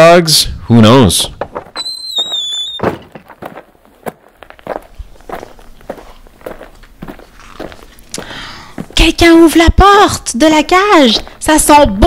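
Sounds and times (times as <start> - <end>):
high-pitched squeal: 1.8 - 3.0.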